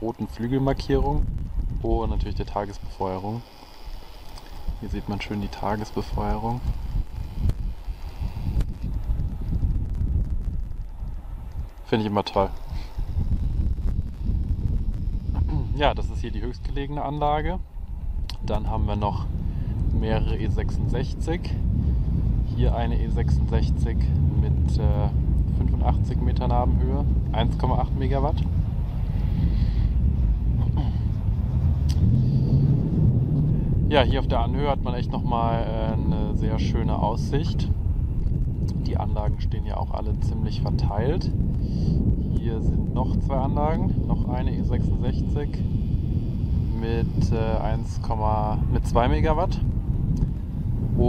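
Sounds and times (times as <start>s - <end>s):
gusty wind on microphone: 0.0s - 51.0s.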